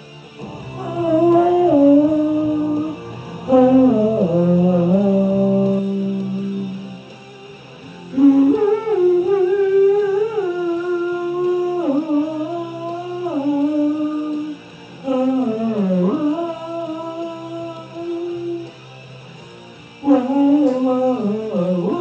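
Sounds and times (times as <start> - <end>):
man singing long notes: 0.0 - 18.8, 20.0 - 22.0
quiet backing track: 0.0 - 22.0.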